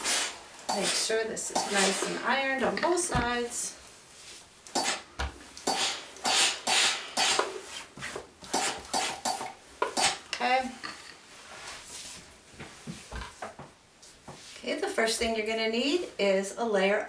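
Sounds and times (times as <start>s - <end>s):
iron scuffing across fabric: 0.0s - 2.3s, 5.8s - 9.4s, 11.3s - 14.7s.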